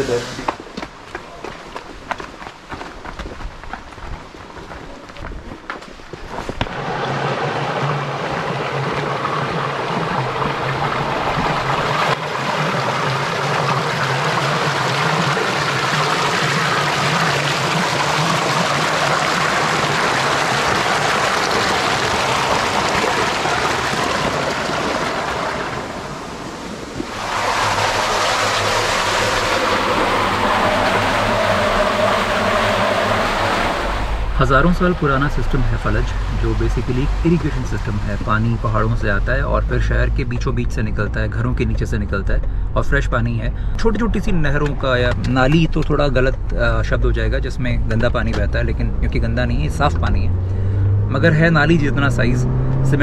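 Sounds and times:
water rushing through channel: 0.0s - 5.5s, 6.1s - 53.0s.

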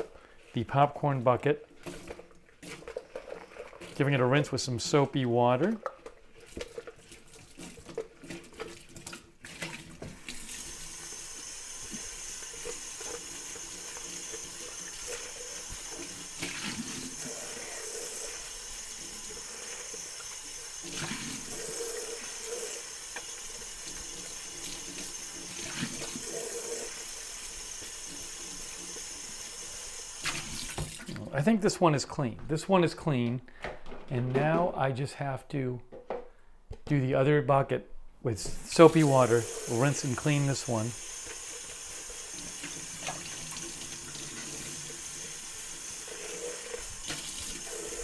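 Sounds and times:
tap water running into bucket: 0.0s - 31.4s, 38.4s - 48.0s.

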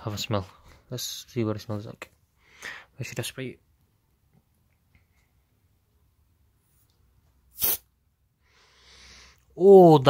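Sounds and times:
aerosol can hiss: 7.5s - 7.9s.

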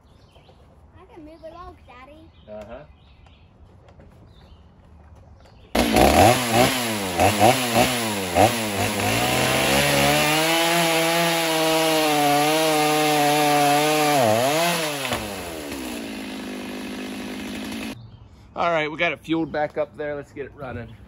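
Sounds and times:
chainsaw cutting wood: 5.8s - 18.0s.

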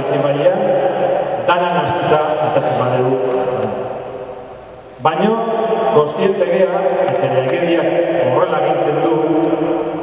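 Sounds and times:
hall reverberation: 0.0s - 10.0s.

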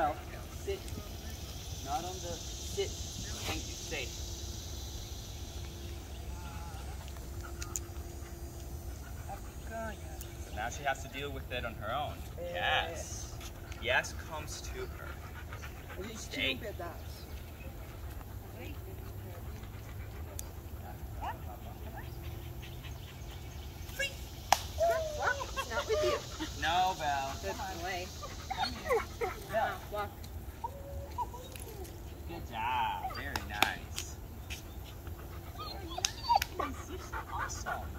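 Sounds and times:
dog whining: 28.2s - 33.4s, 35.4s - 37.0s.

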